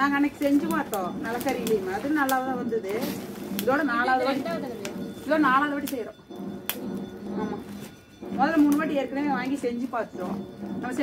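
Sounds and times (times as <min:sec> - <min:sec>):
fire cracking: 0:00.0 - 0:11.0.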